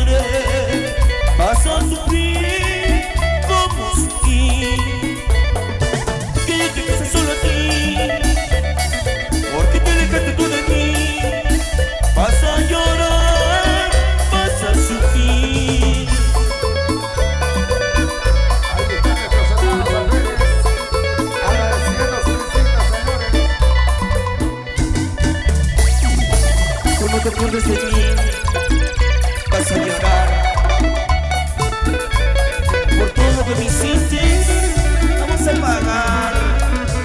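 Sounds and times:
live band dance music: 0.0 - 37.0
pulsing bass beat: 0.0 - 37.0.

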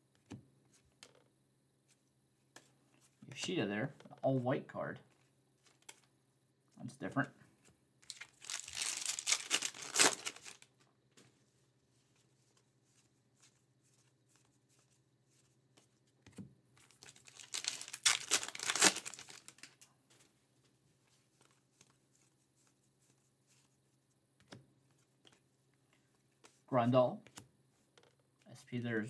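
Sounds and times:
wrapper tearing and crinkling: 8.0 - 10.7, 16.9 - 19.8.

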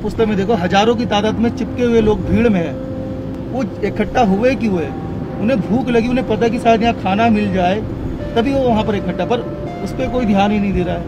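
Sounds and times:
person speaking: 0.0 - 11.0.

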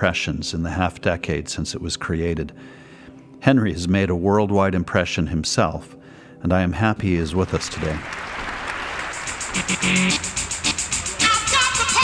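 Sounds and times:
audience applause: 7.3 - 10.2
music with quick beat: 9.2 - 12.0.

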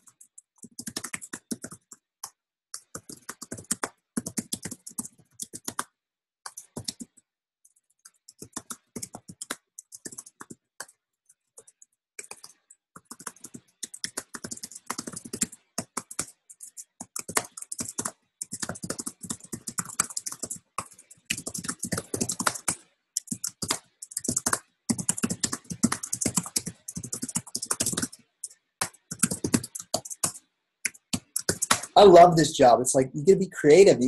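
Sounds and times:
computer keyboard key clicks: 11.6 - 28.2, 28.8 - 31.9.

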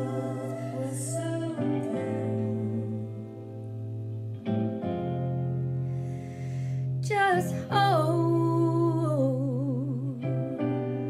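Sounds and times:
woman singing long held note: 0.0 - 3.6
sustained backing chord: 0.0 - 7.7.

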